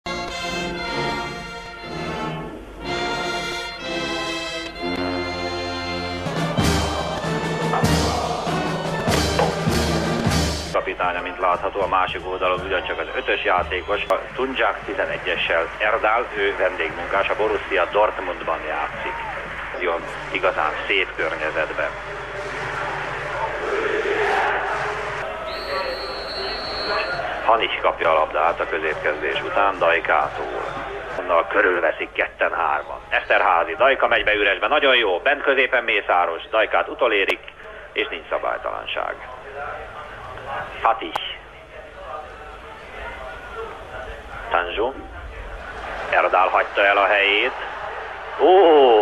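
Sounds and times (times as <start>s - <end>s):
brass band playing anthem: 0.1s - 10.8s, 21.4s - 27.4s
stadium crowd noise: 0.8s - 49.0s
referee's whistle: 25.2s - 27.4s.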